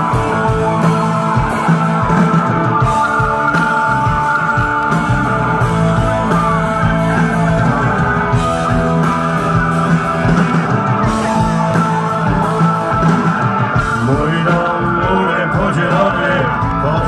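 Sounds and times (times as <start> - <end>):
live rock band playing loudly: 0.0 - 17.0.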